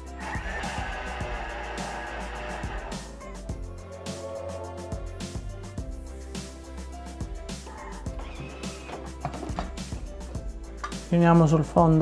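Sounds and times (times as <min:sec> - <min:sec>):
background music with light beat: 0:00.0 - 0:12.0.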